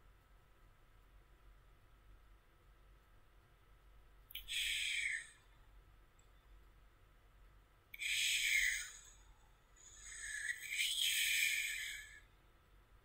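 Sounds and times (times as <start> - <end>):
breathy hisses: 4.5 - 5.4, 8.0 - 9.2, 9.8 - 12.2.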